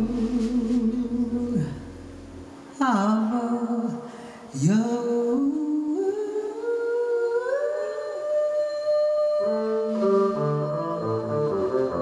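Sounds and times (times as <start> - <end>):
soft double bass line: 0.0 - 3.7, 9.5 - 12.0
woman singing jazz ballad: 0.0 - 10.8.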